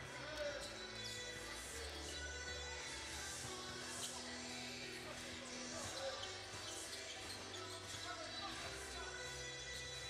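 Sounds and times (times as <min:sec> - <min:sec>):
scattered voices: 0:01.6 - 0:10.0.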